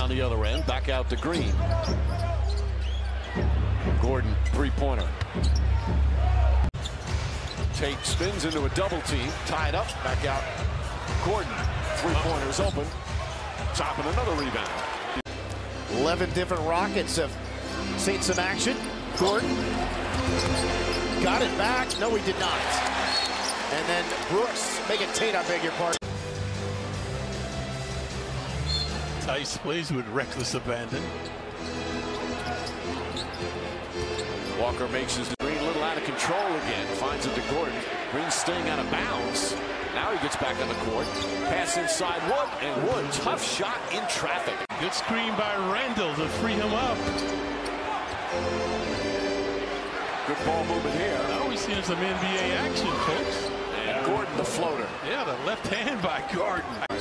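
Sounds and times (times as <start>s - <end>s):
arena music: 0.0s - 57.0s
crowd noise: 0.0s - 57.0s
basketball court sounds: 1.2s - 15.6s, 19.2s - 22.0s, 44.6s - 50.3s.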